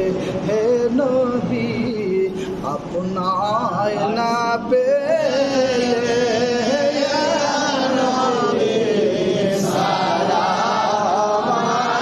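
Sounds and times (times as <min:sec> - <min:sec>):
man chanting: 0:00.0 - 0:11.9.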